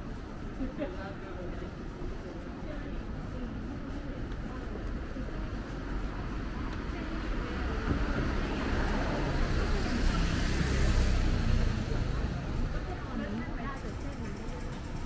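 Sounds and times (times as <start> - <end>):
people talking: 0.5 - 15.0.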